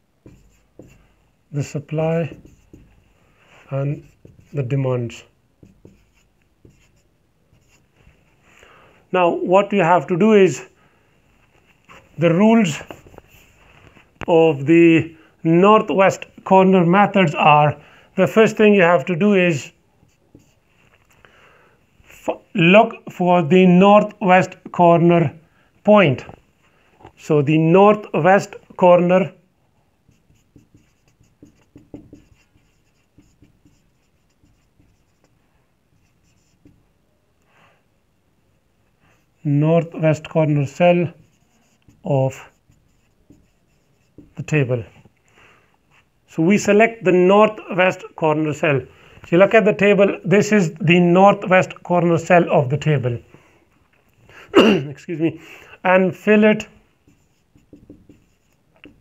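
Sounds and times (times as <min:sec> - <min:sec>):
marker writing on whiteboard: 0:00.2 - 0:08.2, 0:11.8 - 0:14.3, 0:18.2 - 0:21.2, 0:27.9 - 0:29.4, 0:30.0 - 0:36.9, 0:39.1 - 0:45.2, 0:56.1 - 0:59.0.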